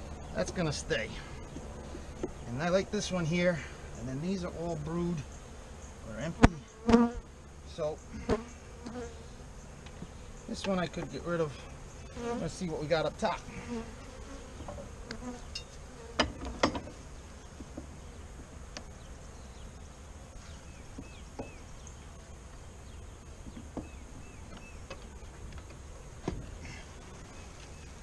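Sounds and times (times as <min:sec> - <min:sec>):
bees buzzing: 0:00.0 - 0:28.0.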